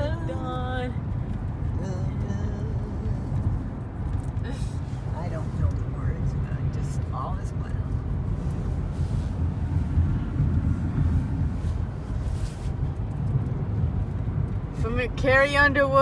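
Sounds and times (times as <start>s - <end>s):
car interior road rumble: 0.0s - 16.0s.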